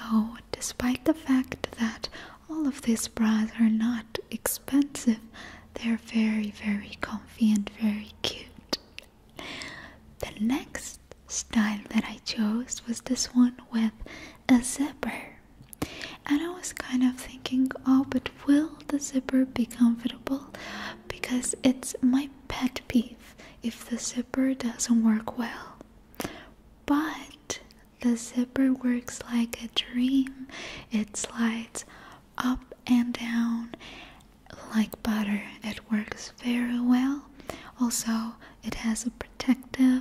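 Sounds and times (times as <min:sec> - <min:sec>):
woman whispering softly: 0:00.0 - 0:08.9, 0:10.2 - 0:15.4, 0:16.2 - 0:25.8, 0:26.9 - 0:33.8, 0:34.5 - 0:40.0.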